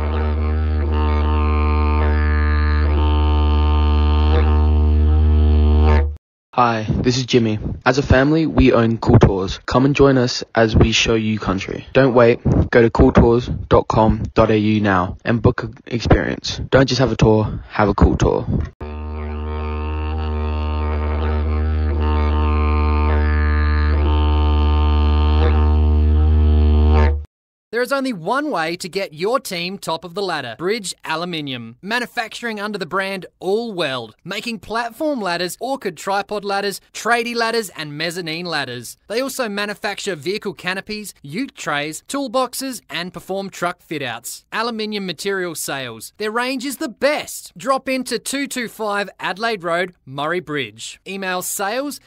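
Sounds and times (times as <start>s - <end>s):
didgeridoo drone: 0.0s - 6.2s, 18.8s - 27.3s.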